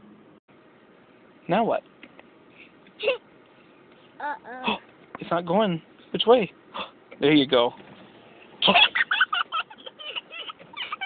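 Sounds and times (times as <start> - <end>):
person laughing: 8.6 - 11.0.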